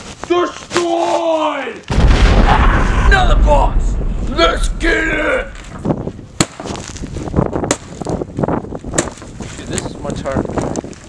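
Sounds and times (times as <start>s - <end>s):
sharp crack: 1.9s - 7.0s.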